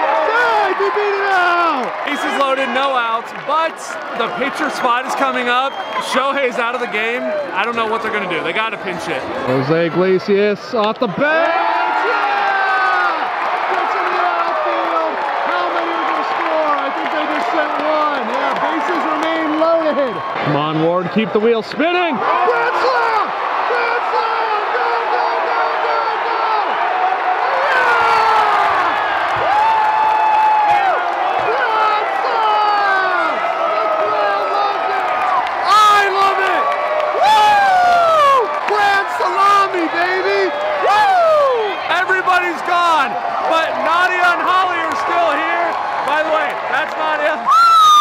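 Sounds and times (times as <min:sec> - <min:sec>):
stadium crowd cheering: 0:00.0 - 0:48.0.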